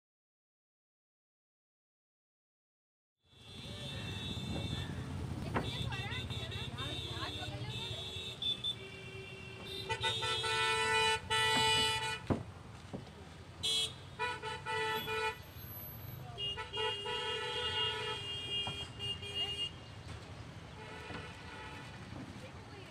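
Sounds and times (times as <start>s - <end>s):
road traffic: 3.2s - 22.9s
vehicle horns honking: 3.3s - 12.4s, 13.6s - 20.0s, 20.7s - 22.3s.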